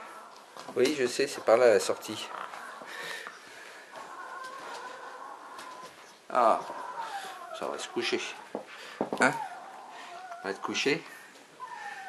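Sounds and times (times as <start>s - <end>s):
puppy whining: 1.9s - 12.0s.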